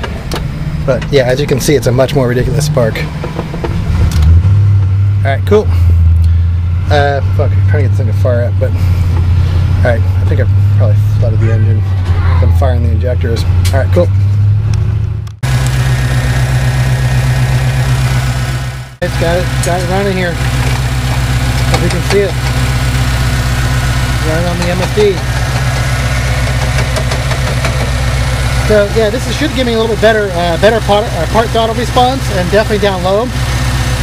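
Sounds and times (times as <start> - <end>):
car engine cranking: 0.0 - 34.0.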